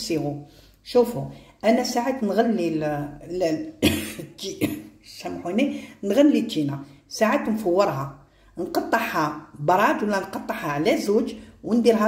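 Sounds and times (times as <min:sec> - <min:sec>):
woman talking: 0:00.0 - 0:12.0
woman coughing: 0:03.8 - 0:05.0.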